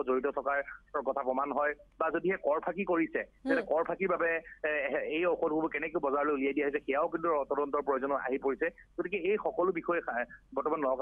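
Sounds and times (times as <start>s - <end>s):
man talking over telephone: 0.0s - 11.0s.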